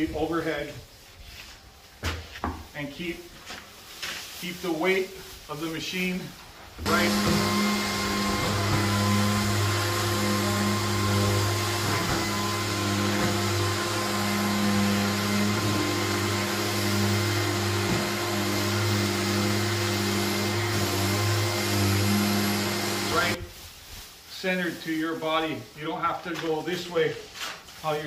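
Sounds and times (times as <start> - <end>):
drywall sander motor drone: 6.8 - 23.4.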